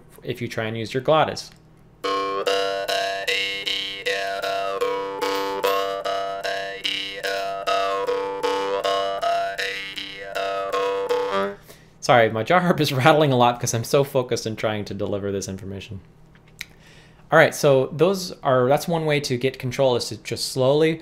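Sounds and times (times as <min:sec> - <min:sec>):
jaw harp buzzing drone: 0:02.0 - 0:11.7.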